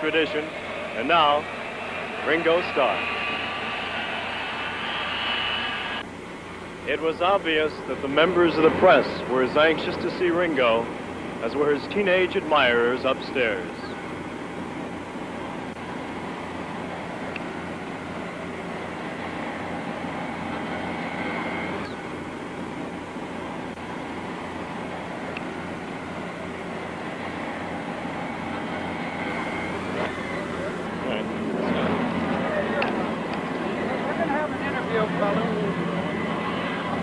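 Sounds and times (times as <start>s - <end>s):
indistinct voices: 0.0s - 6.0s
aircraft engine roar: 0.0s - 37.0s.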